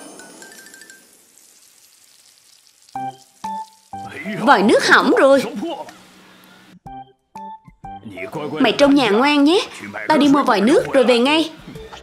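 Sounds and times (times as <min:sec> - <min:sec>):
garden hose spraying water: 0:00.2 - 0:06.7.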